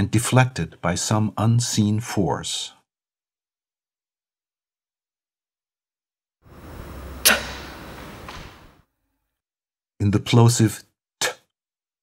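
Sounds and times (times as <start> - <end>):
low steady hum: 6.5 - 8.8.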